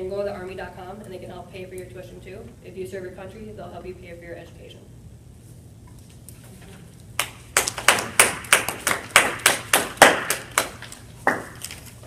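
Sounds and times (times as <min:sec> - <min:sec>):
people clapping: 0:07.2 - 0:11.8.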